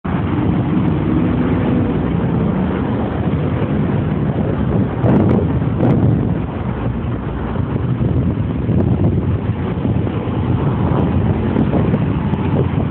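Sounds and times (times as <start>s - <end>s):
passing cars and trucks rumble: 0.0s - 12.9s.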